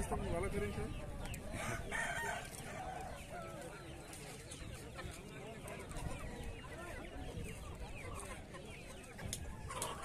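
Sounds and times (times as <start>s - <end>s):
rooster crowing: 1.6s - 3.1s.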